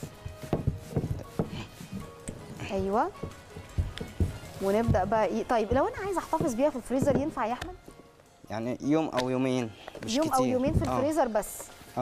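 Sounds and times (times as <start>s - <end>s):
rolling pin knocking on table: 3.1s - 7.7s.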